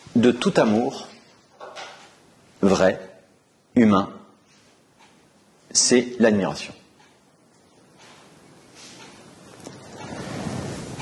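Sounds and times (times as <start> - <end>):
clothing rustling on microphone: 8.1 - 11.0.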